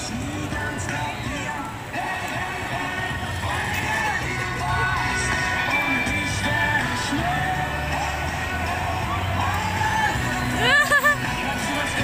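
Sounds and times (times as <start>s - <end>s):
faint voices: 0.0s - 12.0s
music: 0.0s - 12.0s
roller coaster rumbling on track: 0.0s - 12.0s.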